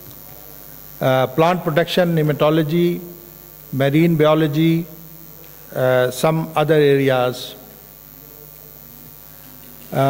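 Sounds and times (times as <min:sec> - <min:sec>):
electrical mains hum: 0:00.0 - 0:10.0
faint hiss: 0:00.0 - 0:10.0
man's voice: 0:05.8 - 0:07.6.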